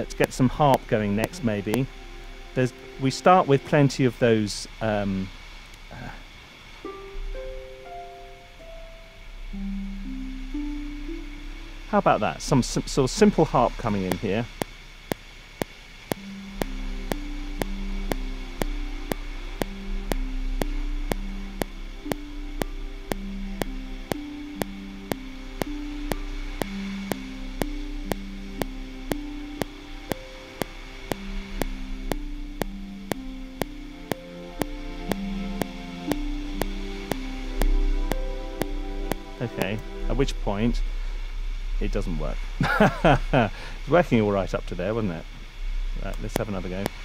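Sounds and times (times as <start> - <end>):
metronome clicking: 0.0 - 4.3, 12.7 - 40.4
sampled orchestral music: 0.0 - 5.0, 6.8 - 14.5, 16.2 - 47.0.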